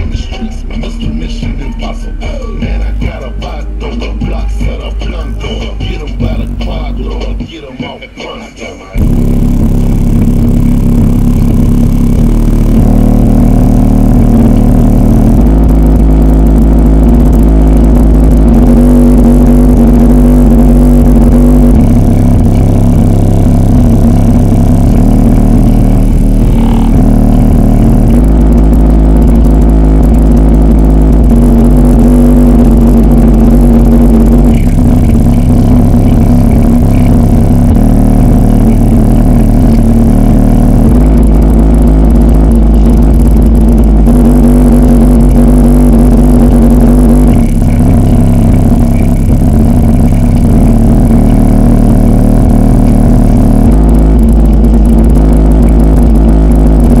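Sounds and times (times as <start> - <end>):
distorted synthesized bass: 0.0 - 57.0
steady mid tone: 0.0 - 57.0.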